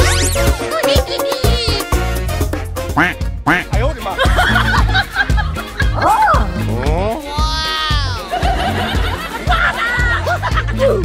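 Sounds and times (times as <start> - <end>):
comedic background music: 0.0 - 11.0.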